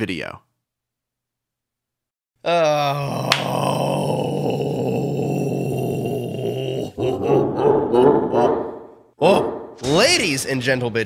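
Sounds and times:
man groaning: 0:02.4 - 0:08.6
man's wavering vocal sounds: 0:02.4 - 0:09.4.

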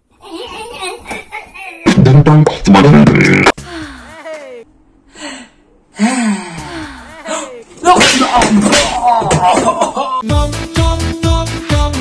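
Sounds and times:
person gasping: 0:03.6 - 0:07.6.

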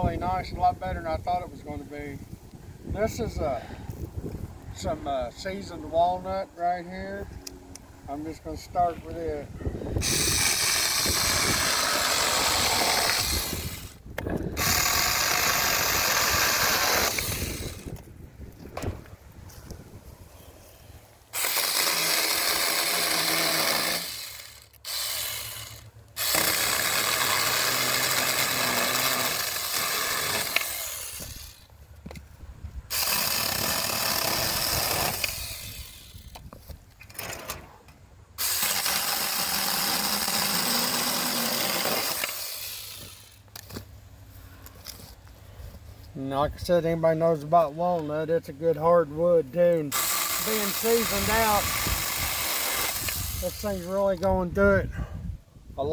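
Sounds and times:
electric chainsaw cutting branch: 0:10.0 - 0:18.0, 0:21.3 - 0:31.7, 0:32.9 - 0:36.5, 0:38.4 - 0:43.8, 0:49.9 - 0:54.0.

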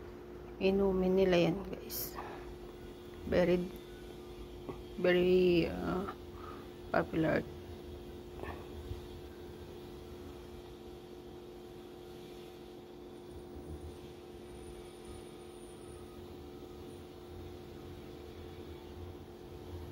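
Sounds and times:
low hum with faint hiss: 0:00.0 - 0:19.9.

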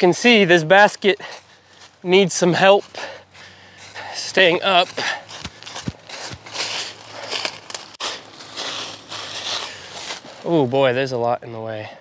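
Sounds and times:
footsteps crunching dry leaves: 0:00.0 - 0:11.2.

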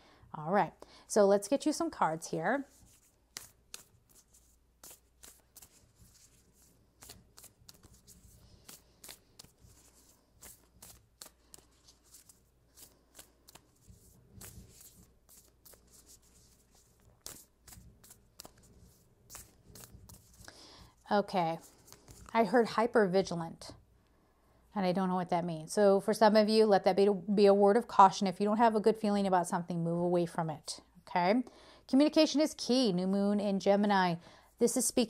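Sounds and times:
cards being shuffled: 0:02.7 - 0:22.4
cards clicking and slapping: 0:03.3 - 0:06.4, 0:07.0 - 0:20.5.

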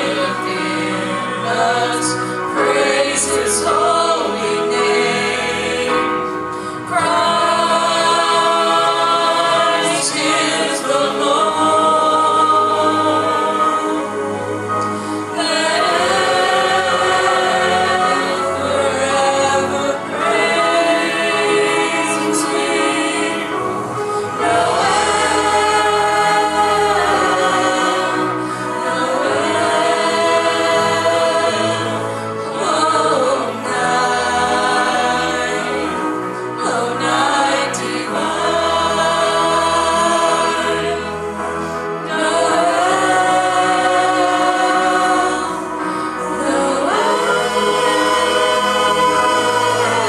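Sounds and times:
group singing in harmony: 0:00.0 - 0:50.0.

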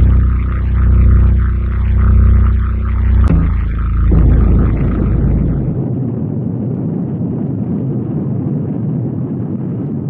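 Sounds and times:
distorted extreme metal music: 0:00.0 - 0:05.8.

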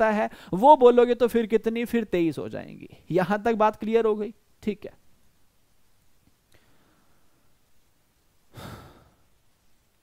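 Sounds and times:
short exhaled breath: 0:08.5 - 0:09.2.

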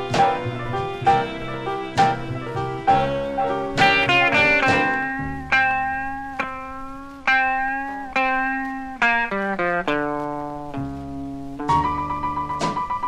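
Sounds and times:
plucked blues guitar chords: 0:00.0 - 0:13.0.

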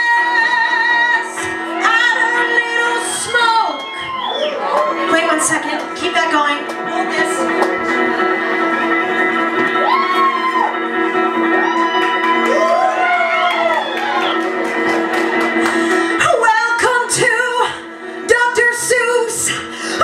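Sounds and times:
voices whooping: 0:03.0 - 0:05.1, 0:09.8 - 0:14.5
electric guitar chords: 0:04.7 - 0:20.0.

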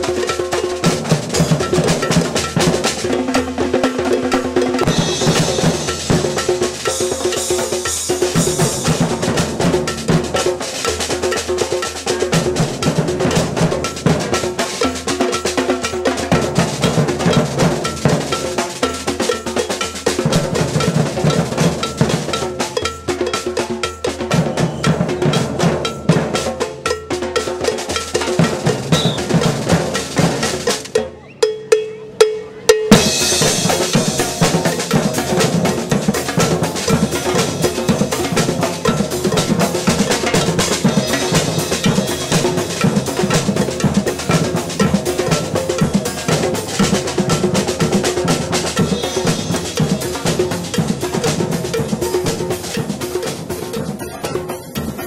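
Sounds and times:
percussion band drumming: 0:00.0 - 0:55.0.

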